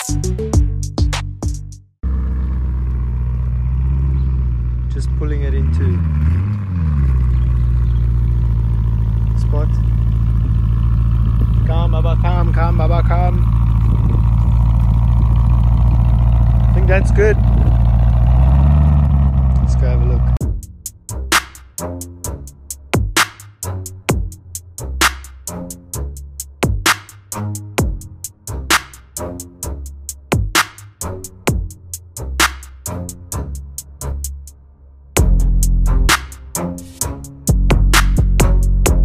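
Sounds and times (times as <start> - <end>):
car engine idling: 2.0 - 39.0.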